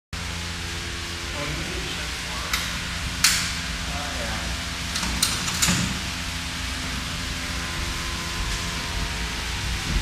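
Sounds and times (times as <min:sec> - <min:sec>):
forklift running: 0:00.2 - 0:10.0.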